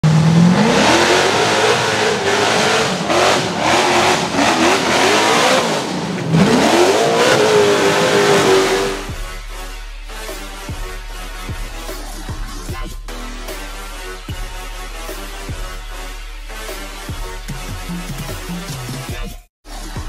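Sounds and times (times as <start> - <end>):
buggy engine revving hard: 0.0 - 9.1.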